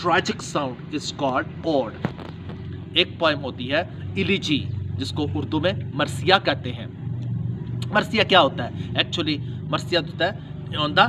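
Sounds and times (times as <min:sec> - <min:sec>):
man talking: 0:00.0 - 0:02.0, 0:03.0 - 0:06.9, 0:07.8 - 0:11.0.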